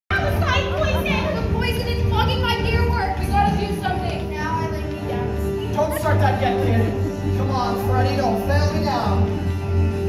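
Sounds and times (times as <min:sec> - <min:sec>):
backing music: 0:00.1 - 0:10.0.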